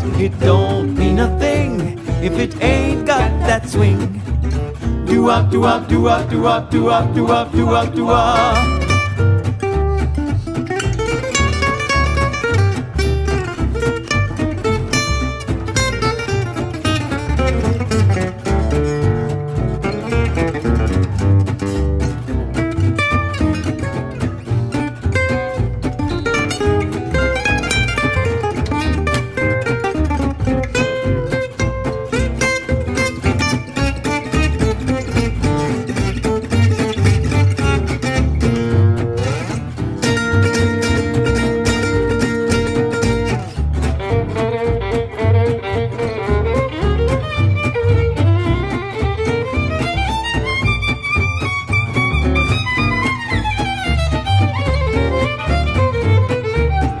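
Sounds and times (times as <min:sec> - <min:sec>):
double bass: 0:00.0 - 0:57.0
strummed rhythm guitar: 0:00.0 - 0:57.0
acoustic guitar fast runs: 0:04.1 - 0:57.0.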